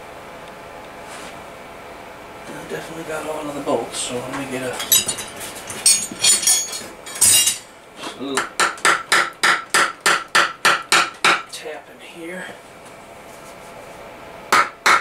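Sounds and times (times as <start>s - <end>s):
hammer striking metal: 14.5s - 15.0s.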